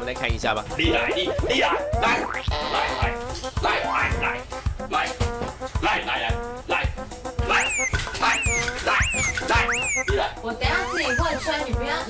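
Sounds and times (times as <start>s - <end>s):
upbeat music with thumping beat: 0.0s - 12.0s
man giving whiny calls: 0.9s - 3.2s, 7.4s - 11.4s.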